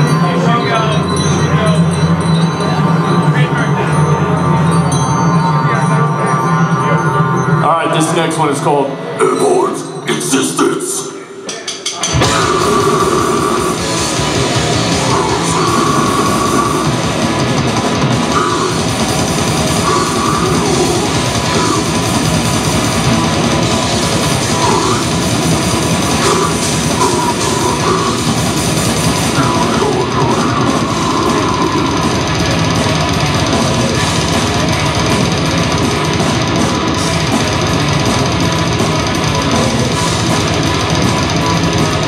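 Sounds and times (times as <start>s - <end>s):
extreme metal band playing: 0.0s - 42.0s
held guitar notes: 11.9s - 42.0s.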